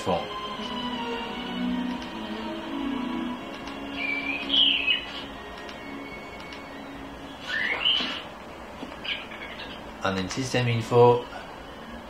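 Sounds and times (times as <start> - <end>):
animated film soundtrack: 0.0 - 12.0
cartoon bird whistled chirp: 7.4 - 8.2.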